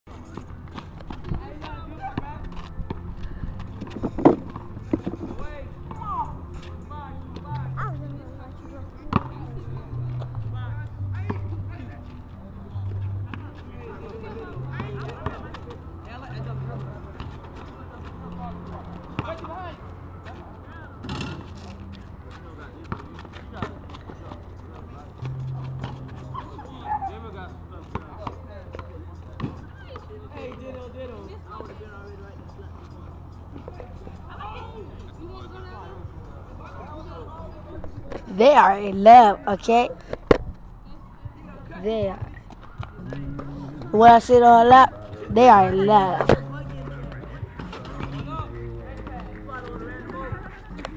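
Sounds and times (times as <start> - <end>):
basketball bouncing on asphalt: 9.1 - 9.4.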